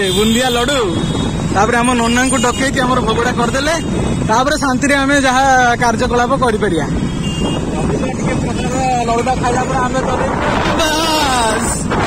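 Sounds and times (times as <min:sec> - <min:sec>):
man talking: 0:00.0 - 0:07.0, 0:07.7 - 0:11.9
wind rumbling on microphone: 0:07.2 - 0:12.0.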